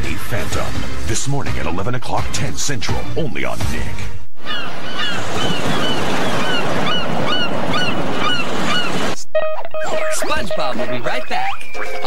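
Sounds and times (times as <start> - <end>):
high-pitched bird-like cries: 4.4 - 9.0
ocean surf: 4.6 - 11.4
steady pitched tone: 9.3 - 12.0.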